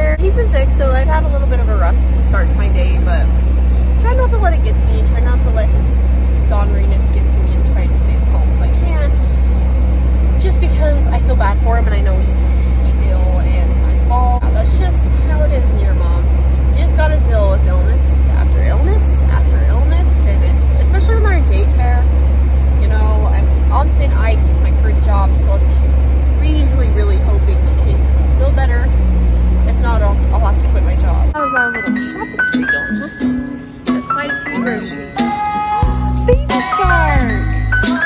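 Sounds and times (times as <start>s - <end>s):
car road rumble: 0.0s - 38.0s
person talking: 10.4s - 22.1s.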